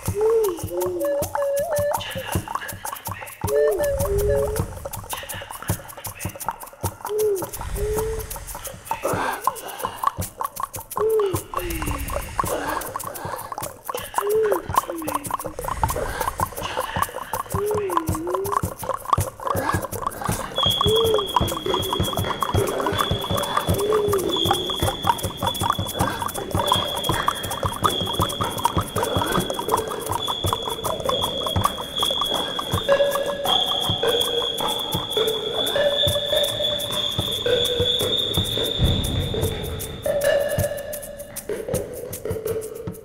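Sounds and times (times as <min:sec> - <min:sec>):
high whistle-like melody: 0:00.0 - 0:42.2
fast percussive strokes: 0:00.0 - 0:43.0.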